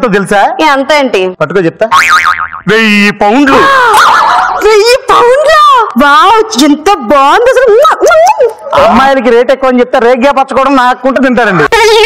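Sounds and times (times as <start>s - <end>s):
cartoon boing sound effect: 2.0s - 2.7s.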